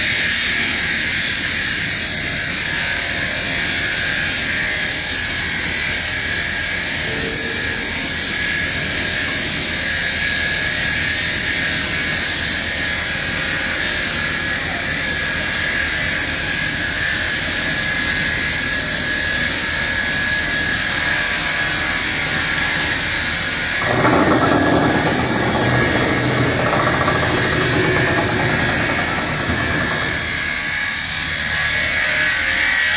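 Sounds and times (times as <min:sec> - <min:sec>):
rough machine noise: 0:23.3 - 0:31.4
saw machine whining: 0:23.7 - 0:31.1.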